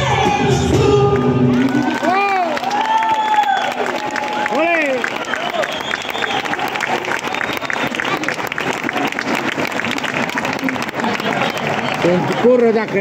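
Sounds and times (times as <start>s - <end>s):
audience applauding: 1.2s - 13.0s.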